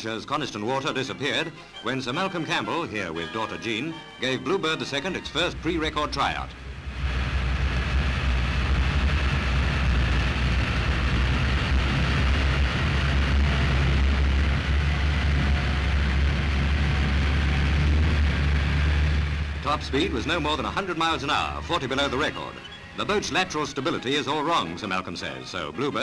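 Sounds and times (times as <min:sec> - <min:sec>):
racing boat engine roaring: 0:02.1 - 0:26.0.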